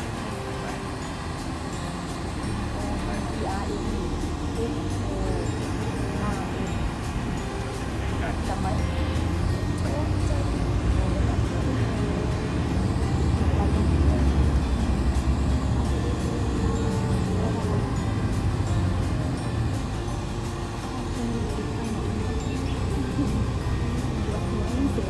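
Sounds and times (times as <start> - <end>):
road and engine rumble: 0.0 - 25.0.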